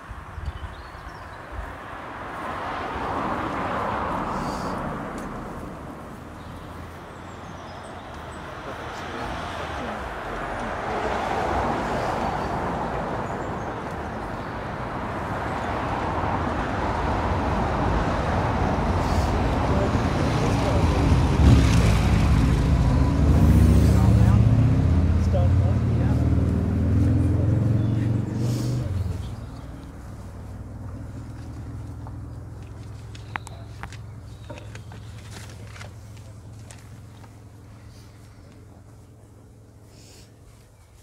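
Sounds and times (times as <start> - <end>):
passing cars: 0.0 - 41.0
vehicle with low engine note: 2.7 - 41.0.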